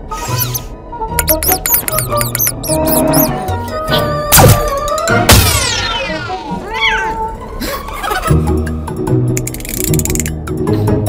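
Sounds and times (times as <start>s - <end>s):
high-pitched cartoon squeaks: 0.1s - 4.6s.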